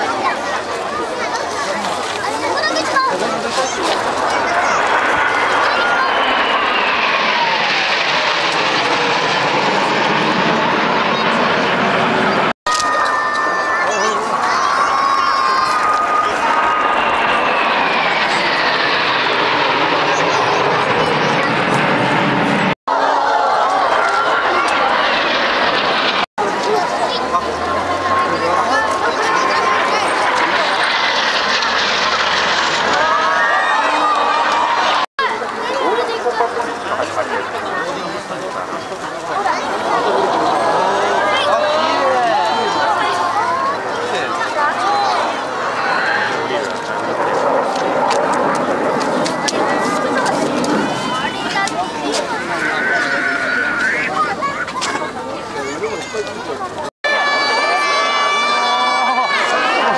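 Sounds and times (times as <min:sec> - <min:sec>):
jet aircraft flying over: 0:00.0 - 0:59.9.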